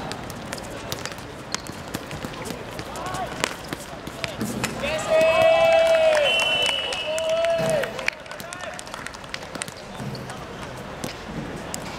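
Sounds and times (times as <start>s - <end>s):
distant voices of players: 0.0s - 11.9s.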